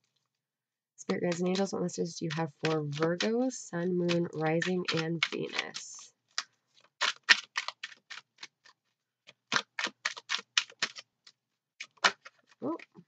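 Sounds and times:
cards being shuffled: 4.1s - 13.0s.

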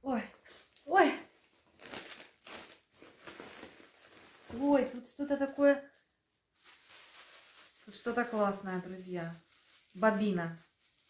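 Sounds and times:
plastic bag rustling: 1.3s - 11.0s.

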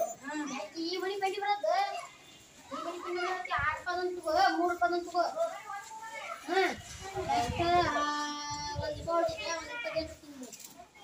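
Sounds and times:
children calling and talking: 0.0s - 11.0s.

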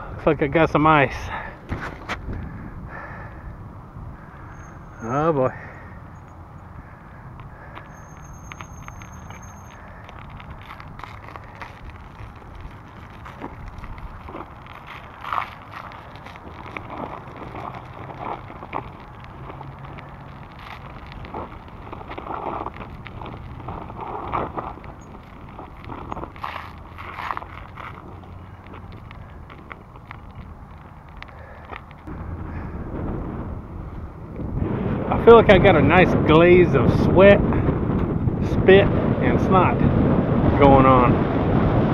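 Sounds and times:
bicycle tyres rolling on icy path: 0.0s - 41.9s
ice crust crunching under tyres: 0.2s - 3.4s, 4.2s - 41.9s.

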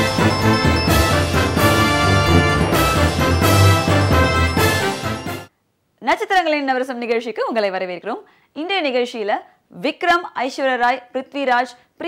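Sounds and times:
upbeat theme music with bass line: 0.0s - 5.5s.

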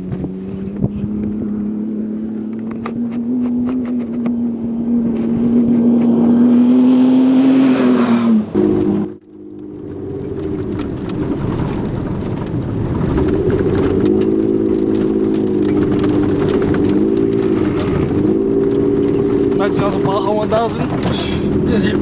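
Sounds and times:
engine and road rumble in cab: 0.0s - 22.0s.

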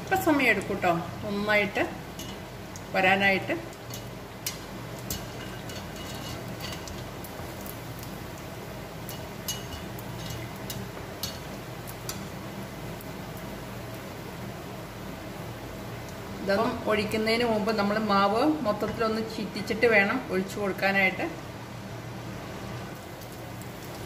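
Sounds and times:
batter deep-frying in oil: 0.0s - 24.0s.

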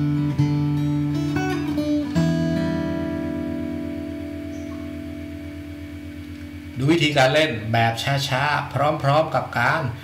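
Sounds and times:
acoustic guitar chord ringing: 0.0s - 9.4s.

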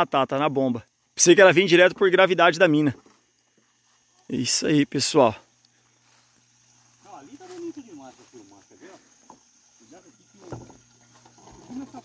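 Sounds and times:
people conversing: 0.0s - 12.0s
low steady hum: 0.5s - 12.0s.

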